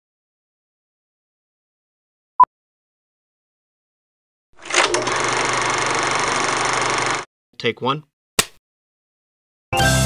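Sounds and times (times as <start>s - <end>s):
rapid mechanical clatter: 4.6s - 7.3s.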